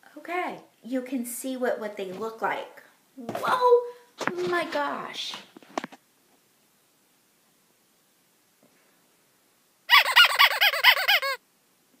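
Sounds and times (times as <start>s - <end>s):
cartoon warbling honk: 9.9s - 11.4s.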